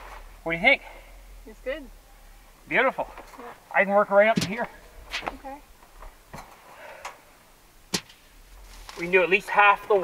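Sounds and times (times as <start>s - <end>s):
sharp knocks: 4.3s - 5.4s.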